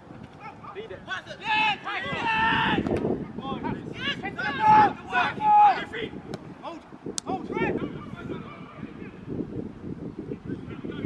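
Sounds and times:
footballers shouting: 0.4s - 9.1s.

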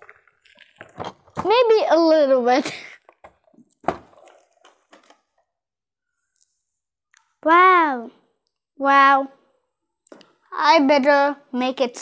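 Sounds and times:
box thumping onto table: 3.8s - 4.3s.

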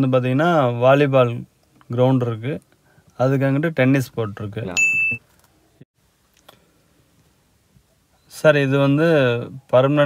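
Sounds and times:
short electronic beep: 4.8s - 5.2s.

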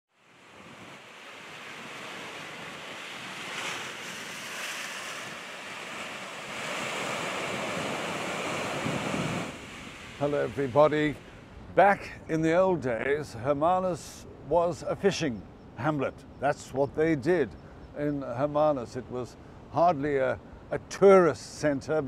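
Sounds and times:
surf breaking on rocky shore: 0.2s - 11.4s.

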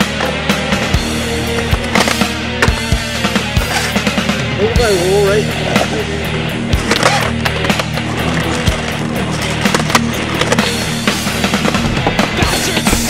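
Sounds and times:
skateboard wheels rolling: 0.0s - 4.5s, 5.4s - 13.0s
music: 0.0s - 13.0s.

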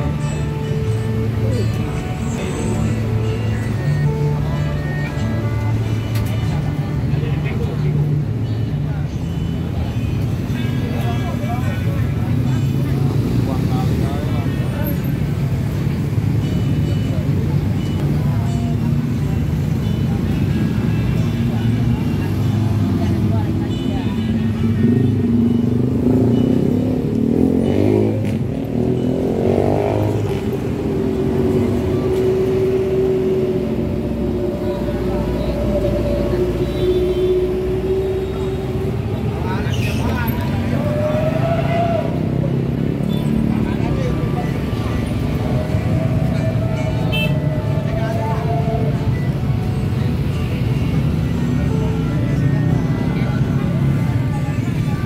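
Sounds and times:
motor traffic: 0.0s - 55.0s
vehicle engine droning: 0.0s - 55.0s
background voices: 30.1s - 55.0s.

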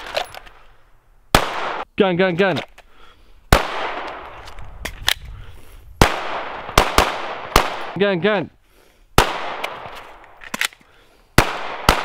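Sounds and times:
pistol shots: 1.3s - 1.9s, 3.5s - 4.3s, 6.0s - 8.0s, 9.2s - 10.3s, 11.4s - 12.0s.

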